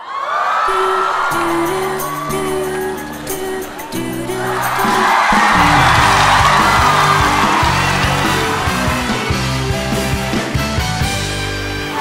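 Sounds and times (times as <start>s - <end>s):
audience cheering: 0.0s - 10.7s
live band playing upbeat music: 3.0s - 12.0s.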